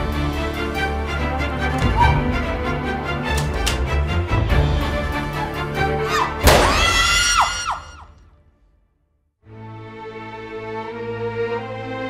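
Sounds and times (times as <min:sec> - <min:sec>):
tense film score with driving beat: 0:00.0 - 0:08.7.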